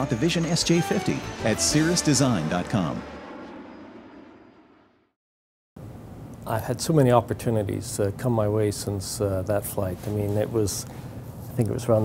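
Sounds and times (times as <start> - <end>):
jet engine rushing: 0.0 - 5.2.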